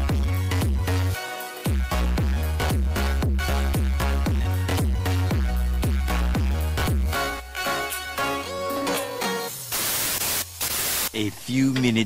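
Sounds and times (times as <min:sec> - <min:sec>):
background music: 0:00.0 - 0:10.6
television static hiss: 0:09.6 - 0:12.0.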